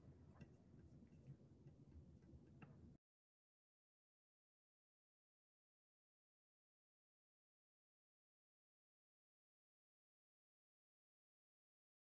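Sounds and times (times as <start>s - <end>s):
faint clicks: 0.0s - 3.0s.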